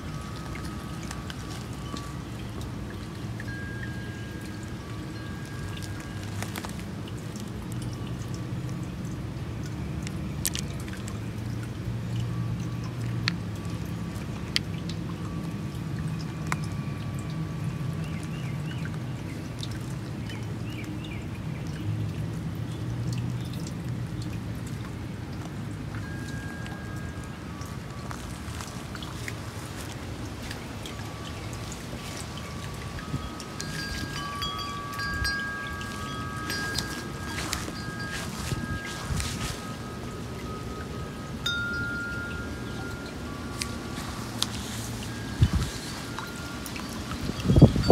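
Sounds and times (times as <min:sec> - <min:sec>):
wind chimes ringing: 0:00.0 - 0:14.1, 0:15.1 - 0:18.4, 0:25.8 - 0:47.9.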